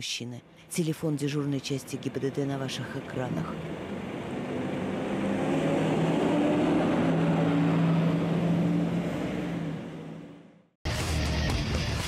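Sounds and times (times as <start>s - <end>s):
crane engine running under load: 1.1s - 10.6s.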